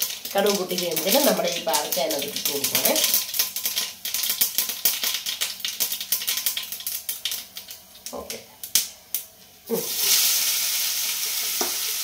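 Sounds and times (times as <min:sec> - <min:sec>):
cabbage sizzling in hot pan: 0:00.0 - 0:12.0.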